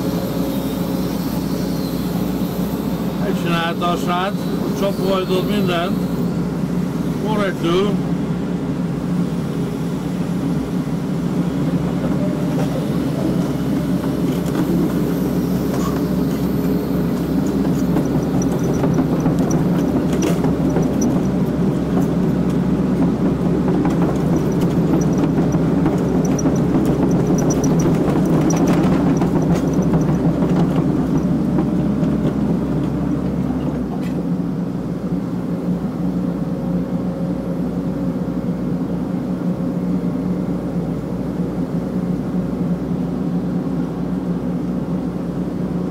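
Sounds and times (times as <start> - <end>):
excavator engine and hydraulics: 0.0 - 45.9.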